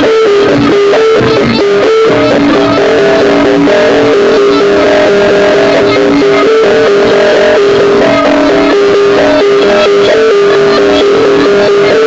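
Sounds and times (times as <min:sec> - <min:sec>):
live melody over percussion: 0:00.0 - 0:12.0.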